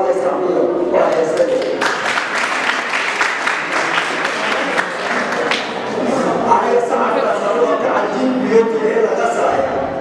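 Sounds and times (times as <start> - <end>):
audience applauding: 1.4 - 6.0.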